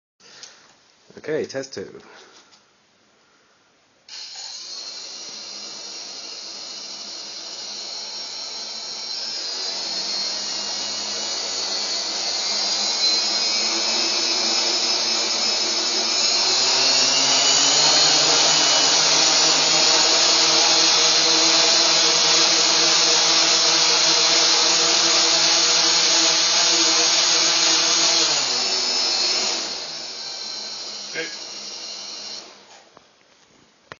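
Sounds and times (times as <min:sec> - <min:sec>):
quadcopter motors whining: 0:04.1 - 0:32.9.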